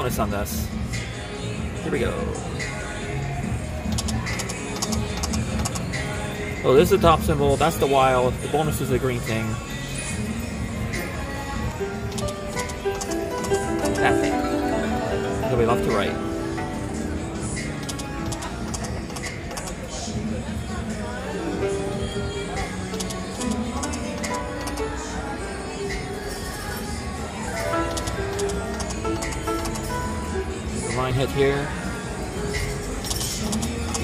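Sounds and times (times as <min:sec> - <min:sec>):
casino background music: 0:00.0 - 0:34.0.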